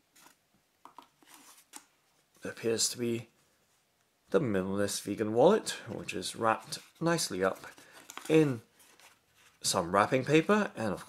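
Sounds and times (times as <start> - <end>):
rustle of paper and cardboard: 6.5 - 9.8.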